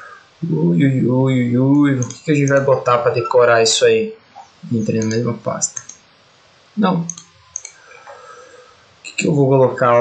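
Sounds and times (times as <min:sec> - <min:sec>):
computer mouse clicking: 0:01.8 - 0:02.7, 0:04.9 - 0:06.0, 0:07.1 - 0:08.2.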